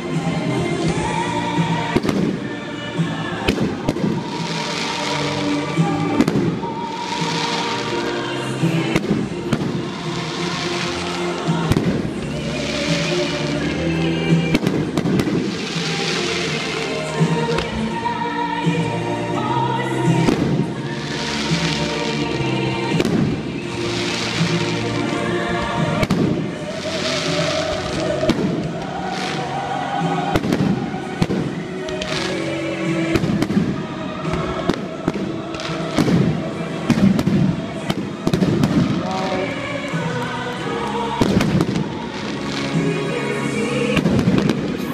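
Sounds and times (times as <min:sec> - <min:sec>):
music playing: 0:00.0 - 0:44.9.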